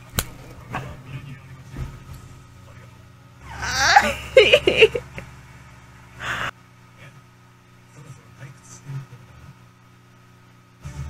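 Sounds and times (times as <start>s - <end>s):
woman laughing: 3.4s - 5.2s, 6.2s - 6.5s.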